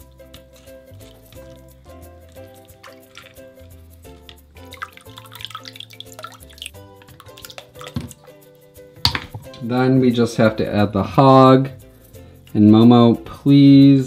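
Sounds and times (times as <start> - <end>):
background music: 0.0 - 14.0
water dripping and splashing: 0.9 - 8.4.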